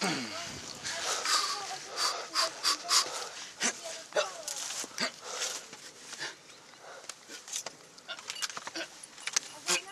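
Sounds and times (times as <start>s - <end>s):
person breathy vocal sounds: 0.0s - 3.8s.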